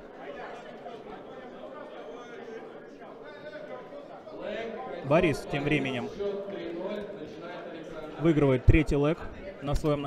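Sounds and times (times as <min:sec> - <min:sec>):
murmur of chatter in a hall: 0:00.0 - 0:10.0.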